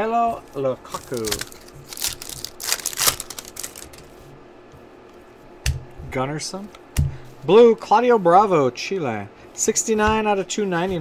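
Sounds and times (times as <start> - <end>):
card pack wrapper tearing: 0.9 - 4.1.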